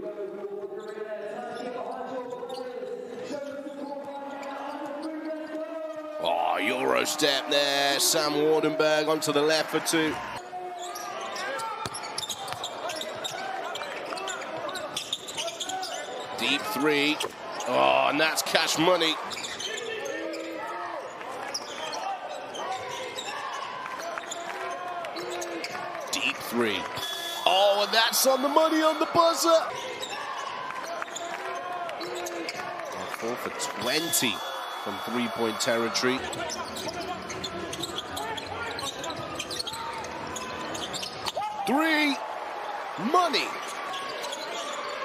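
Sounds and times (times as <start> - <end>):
murmur of crowd voices: 0.0 - 45.0
shoe squeaks: 0.8 - 5.6, 10.7 - 17.7, 19.2 - 24.5, 27.0 - 31.3, 33.8 - 41.4, 43.5 - 45.0
calls and voices: 26.1 - 29.8, 32.9 - 39.0.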